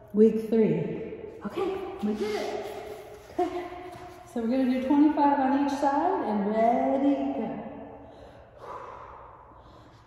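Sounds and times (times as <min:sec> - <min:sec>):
woman breathing: 0:08.0 - 0:10.0.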